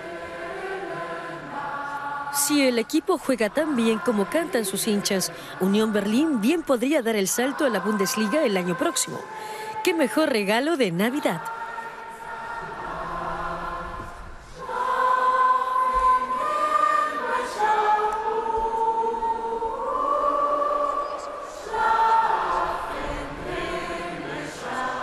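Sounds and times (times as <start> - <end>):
crowd singing a carol: 0.0 - 25.0.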